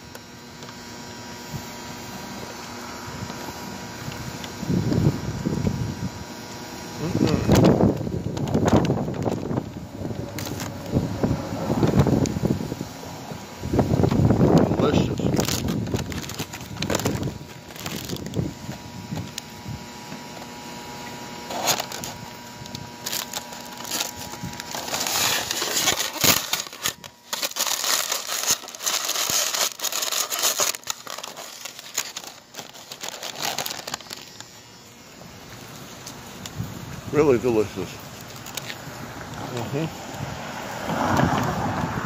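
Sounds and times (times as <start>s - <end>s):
paper wrapper crinkling: 7.1s - 11.1s, 14.0s - 19.5s, 21.4s - 34.6s, 37.3s - 38.9s.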